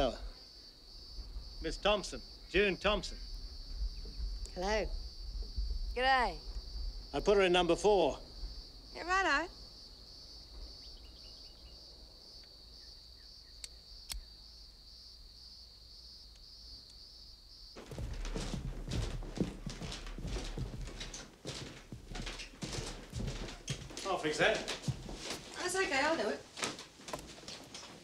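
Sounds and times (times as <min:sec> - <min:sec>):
insects trilling: 0:00.0 - 0:28.0
footsteps and knocks: 0:17.8 - 0:28.0.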